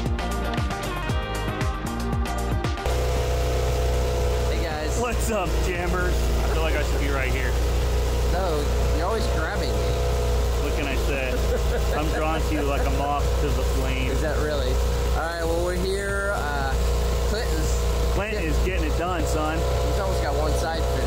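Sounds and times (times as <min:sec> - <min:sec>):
engine idling: 0:02.8 - 0:21.0
people's voices: 0:04.5 - 0:07.6, 0:08.3 - 0:21.0.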